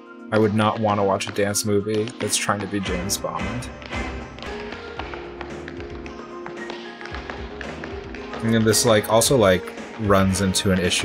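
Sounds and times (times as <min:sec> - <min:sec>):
tap shoes striking floor: 0:00.4 - 0:10.3.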